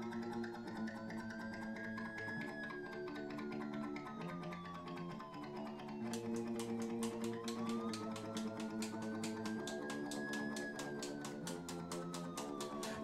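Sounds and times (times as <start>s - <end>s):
fast ticking beat: 6.0s - 13.0s.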